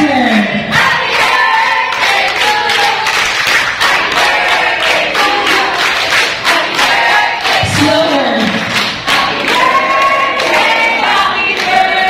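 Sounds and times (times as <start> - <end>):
voices singing long notes: 9.2 - 12.0.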